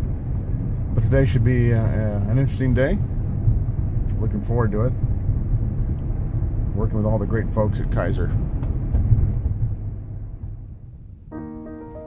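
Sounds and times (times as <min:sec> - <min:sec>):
car cabin road rumble: 0:00.0 - 0:11.4.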